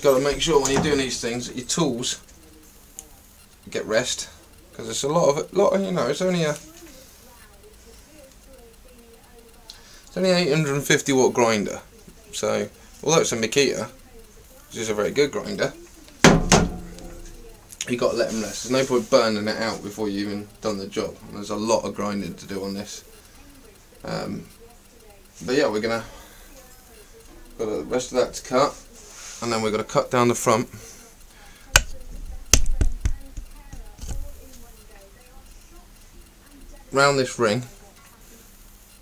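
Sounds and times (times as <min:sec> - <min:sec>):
sharp knocks on metal: 0:16.2 - 0:17.3.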